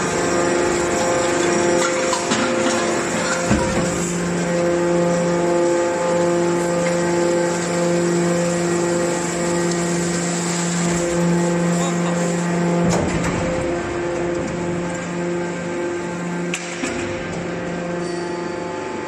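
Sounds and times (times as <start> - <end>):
hydraulic baler humming: 0.0 - 19.0.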